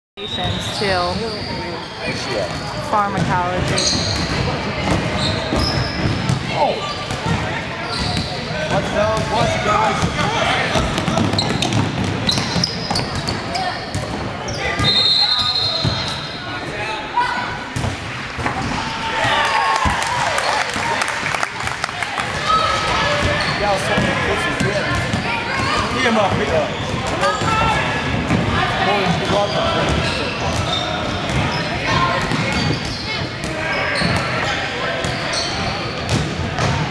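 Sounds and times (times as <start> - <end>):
voices echoing in a gymnasium: 0.2 - 36.9.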